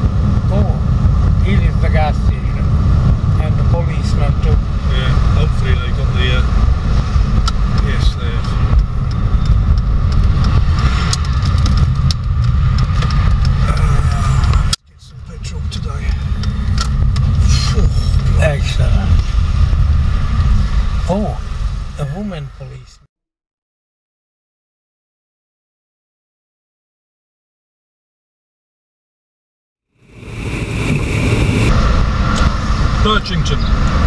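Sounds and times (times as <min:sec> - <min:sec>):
car cabin road noise: 0:00.0 - 0:23.0, 0:30.1 - 0:34.0.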